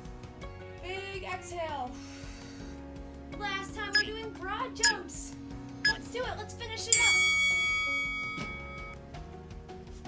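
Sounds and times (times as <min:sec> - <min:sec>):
background music with singing: 0:00.0 - 0:08.3, 0:08.9 - 0:10.0
bell-like chime ringing: 0:06.9 - 0:09.0.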